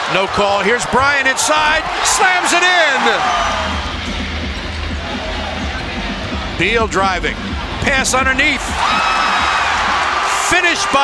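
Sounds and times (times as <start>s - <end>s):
crowd noise: 0.0s - 11.0s
music playing: 1.6s - 11.0s.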